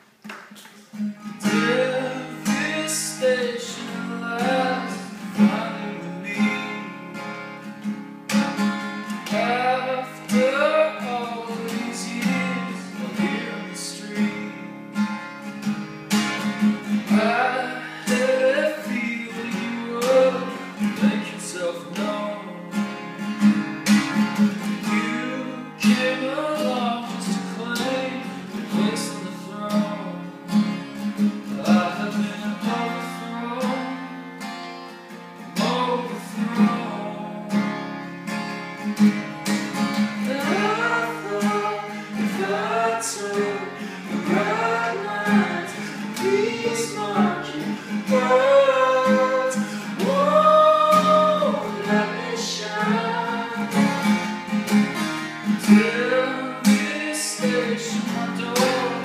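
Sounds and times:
acoustic guitar strumming: 0:00.0 - 0:59.0
man singing: 0:01.2 - 0:07.1, 0:09.2 - 0:14.8, 0:17.0 - 0:22.9, 0:24.8 - 0:34.2, 0:35.6 - 0:37.7, 0:40.0 - 0:54.3, 0:55.5 - 0:59.0.

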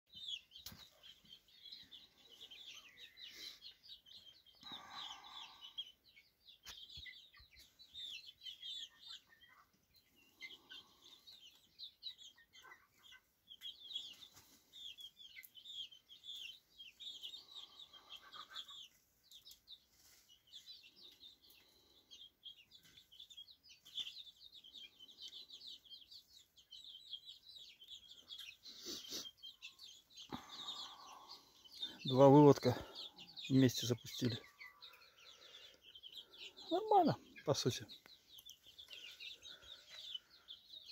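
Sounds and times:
chicken clucking: 0:00.1 - 0:40.9
young chickens peeping: 0:00.1 - 0:40.9.

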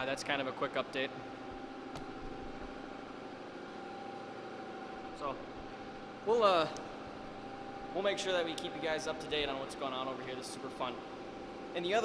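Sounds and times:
air compressor humming: 0:00.0 - 0:12.0
space heater running: 0:00.0 - 0:12.0.

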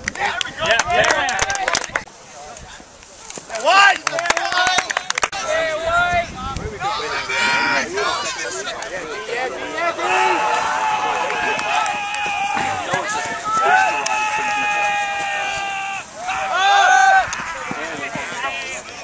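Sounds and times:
people shouting: 0:06.8 - 0:08.7, 0:09.5 - 0:19.0
long held yells: 0:13.5 - 0:17.6.

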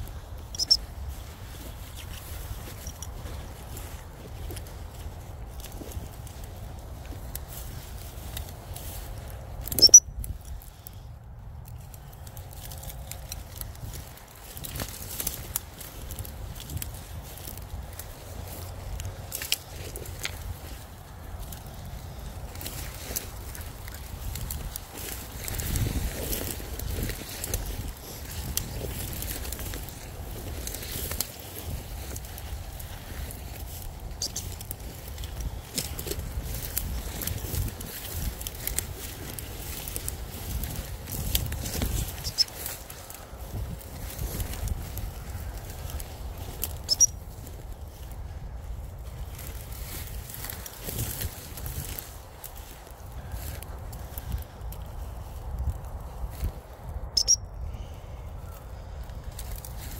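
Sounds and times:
crackles of brushed stems: 0:00.0 - 0:59.9
footsteps through long grass: 0:00.0 - 0:59.9
sharp high-pitched squeak: 0:00.5 - 0:00.8, 0:09.7 - 0:10.1, 0:57.2 - 0:57.4.

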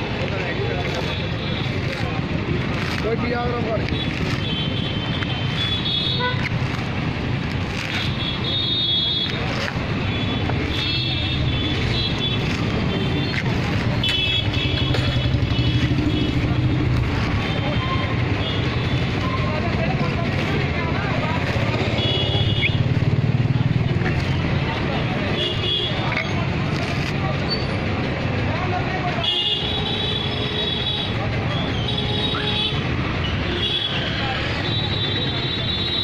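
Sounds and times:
road traffic rumble: 0:00.0 - 0:36.0.

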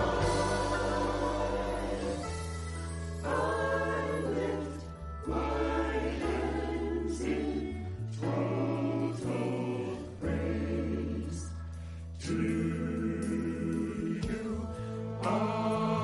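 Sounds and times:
held low bass notes: 0:00.0 - 0:07.4
mixed choir singing gospel: 0:00.0 - 0:16.0.

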